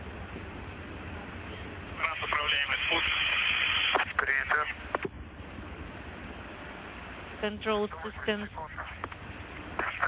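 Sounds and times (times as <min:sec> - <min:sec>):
radio channel hiss: 0:01.9 - 0:05.1, 0:07.5 - 0:10.0
person speaking over radio: 0:02.0 - 0:05.0, 0:07.4 - 0:09.1.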